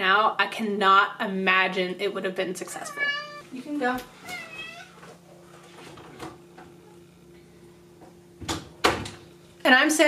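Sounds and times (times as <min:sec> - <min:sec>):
cat meowing: 0:02.8 - 0:03.4, 0:04.2 - 0:05.0.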